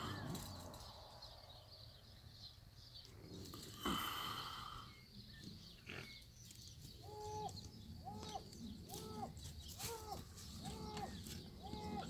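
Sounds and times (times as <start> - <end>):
outdoor background noise: 0.0 - 12.0
animal calling: 7.0 - 12.0.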